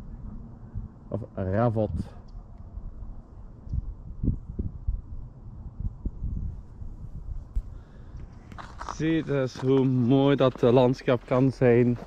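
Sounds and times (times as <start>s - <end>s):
steady low rumble: 0.0s - 12.0s
footsteps in snow: 8.3s - 12.0s.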